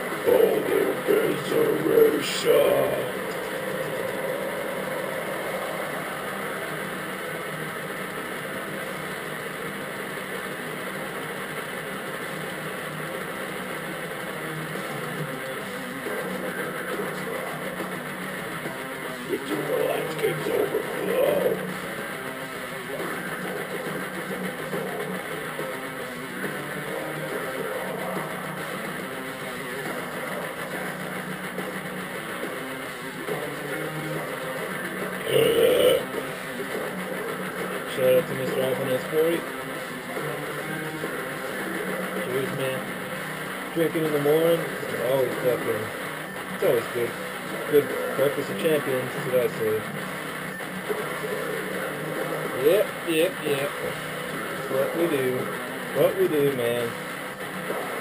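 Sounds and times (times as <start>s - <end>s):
heavy metal song: 0.0s - 10.6s, 23.3s - 56.0s
distorted electric guitars: 0.0s - 58.0s.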